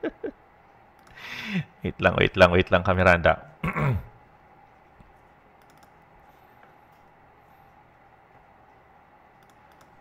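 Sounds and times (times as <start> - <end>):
computer keys clicking: 0.9 - 1.2, 5.6 - 6.0, 9.3 - 10.0.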